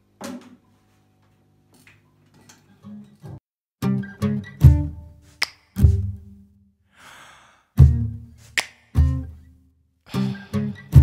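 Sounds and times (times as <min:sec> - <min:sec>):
acoustic guitar chords: 0:03.8 - 0:05.2, 0:05.8 - 0:06.4, 0:07.8 - 0:08.3
short breath: 0:06.9 - 0:07.8, 0:10.1 - 0:10.7.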